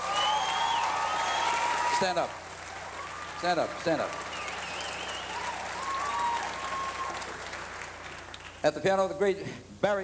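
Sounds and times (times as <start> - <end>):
wavering whistle: 0.0 - 1.6, 4.3 - 7.1
crowd whooping and cheering: 0.0 - 7.9
audience applauding: 0.0 - 8.6.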